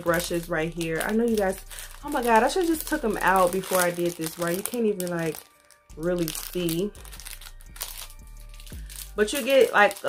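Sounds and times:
faint background music: 0.0 - 10.0
plastic sleeves crinkling: 0.0 - 10.0.

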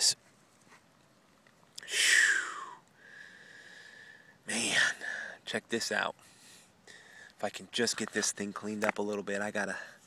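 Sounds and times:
man blowing breath out hard: 1.8 - 5.4.

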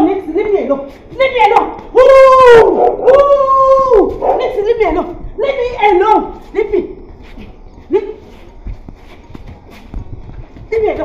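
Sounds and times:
scuffling footsteps on paving: 3.4 - 11.0.

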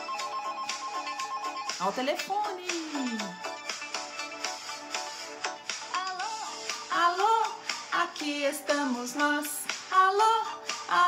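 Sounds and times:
backing track with beat: 0.0 - 11.0
person singing: 2.7 - 3.4, 5.8 - 11.0.

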